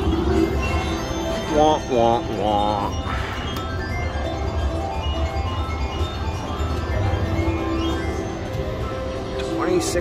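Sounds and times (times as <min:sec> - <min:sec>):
slot machine tinkling electronic melody: 0:00.0 - 0:10.0.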